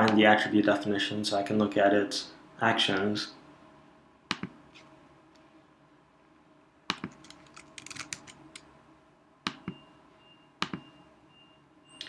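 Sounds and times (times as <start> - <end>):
computer keyboard typing: 6.9 - 8.6.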